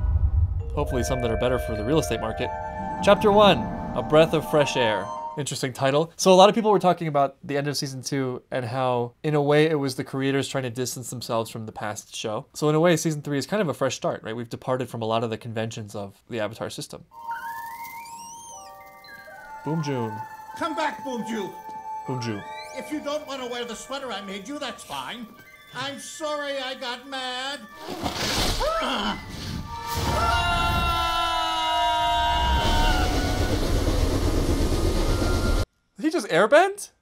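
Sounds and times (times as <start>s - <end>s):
rushing gust of wind: 0.0s - 4.6s, 32.1s - 35.6s
heavy low rumble: 0.0s - 5.0s
held steady music notes: 0.7s - 5.6s, 17.2s - 27.8s
whistle-like sliding tone: 17.2s - 24.2s, 32.2s - 34.1s.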